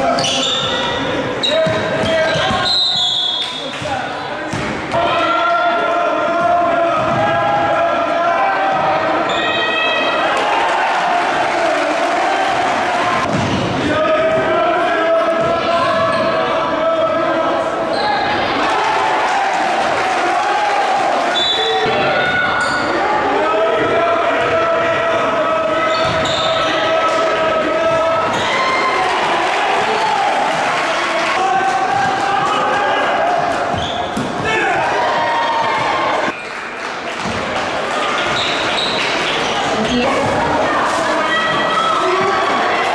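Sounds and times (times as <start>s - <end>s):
crowd din: 0.0s - 42.9s
people shouting: 17.9s - 36.3s.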